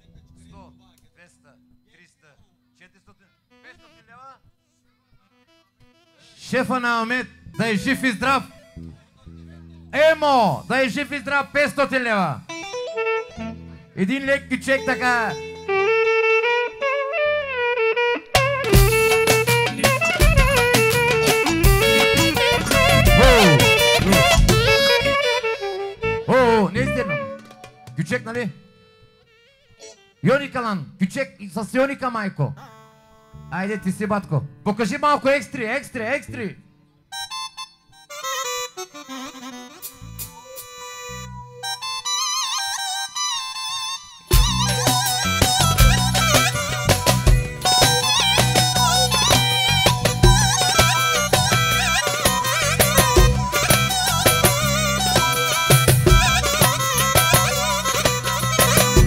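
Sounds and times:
saxophone playing a melody: 5.3s - 6.4s, 12.5s - 14.0s, 14.8s - 30.2s, 37.2s - 59.0s
electronic keyboard solo: 12.5s - 28.0s, 37.5s - 59.0s
live band playing: 18.1s - 28.0s, 39.1s - 42.9s, 44.3s - 59.0s.

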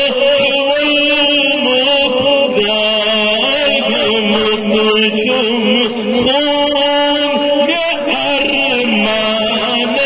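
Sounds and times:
man chanting in held notes: 0.0s - 10.0s.

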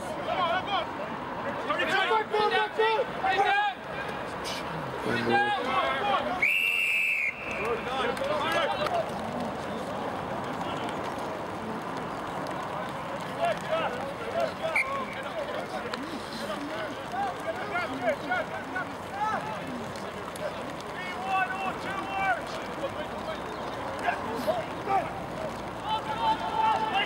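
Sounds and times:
outdoor background voices: 0.0s - 6.6s, 7.4s - 27.0s
players shouting: 0.2s - 4.3s, 9.9s - 27.0s.

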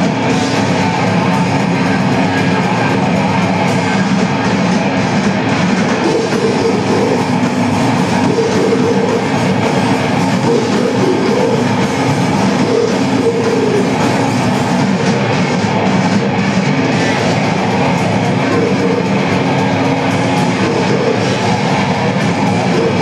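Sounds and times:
distorted guitars and bass: 0.0s - 23.0s
drum kit: 0.0s - 23.0s.

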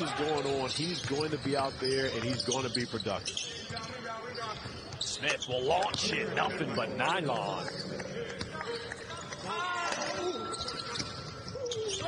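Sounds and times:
shoe squeaks: 0.0s - 6.0s, 10.2s - 12.0s
players' voices: 0.0s - 12.0s.

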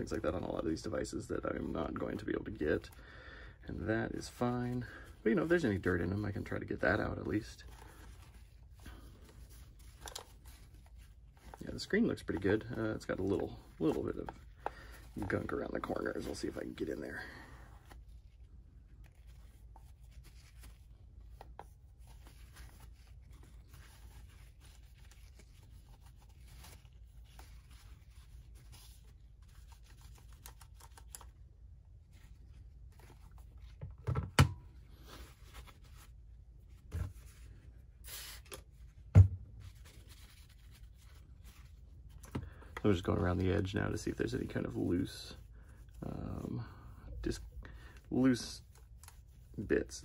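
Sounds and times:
paper towel rubbing on plastic: 3.9s - 31.0s, 42.8s - 50.0s.

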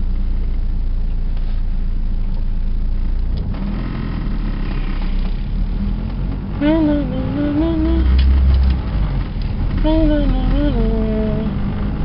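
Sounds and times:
engine and road rumble: 0.0s - 12.0s
person saying oh: 9.9s - 11.5s.

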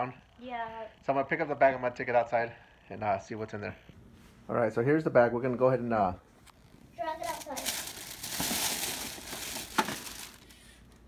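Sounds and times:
plastic bag crinkling: 7.2s - 10.8s.

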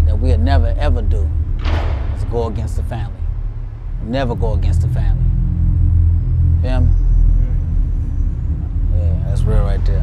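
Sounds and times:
deep low drone: 0.0s - 10.0s.

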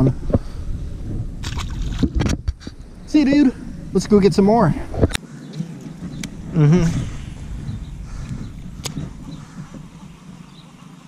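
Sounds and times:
fish splashing into water: 1.4s - 2.1s
short splashes and knocks: 1.4s - 2.6s.

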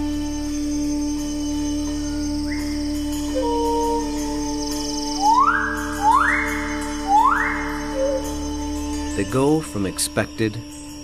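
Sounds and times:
music drone: 0.0s - 11.0s
bird calling harshly: 5.2s - 8.6s.

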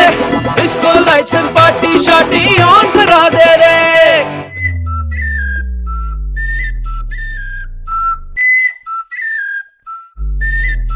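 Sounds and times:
deep falling bass tone: 4.4s - 8.4s, 10.2s - 10.9s
whistled tune: 4.4s - 10.9s.

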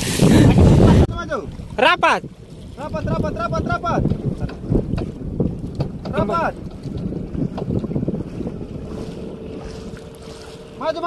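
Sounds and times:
wind buffeting microphone: 0.0s - 11.0s
wooden boat on water: 0.0s - 11.0s
light irregular knocks: 4.0s - 7.9s.

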